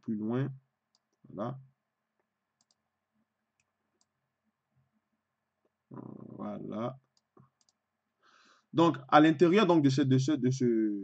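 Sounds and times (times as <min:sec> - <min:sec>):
computer mouse clicks: 0:02.6 - 0:02.8, 0:03.6 - 0:04.2, 0:07.1 - 0:07.8.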